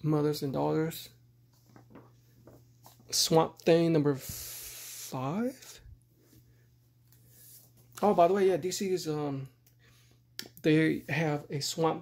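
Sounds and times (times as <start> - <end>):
paper comic books rustling: 1.5 - 3.1.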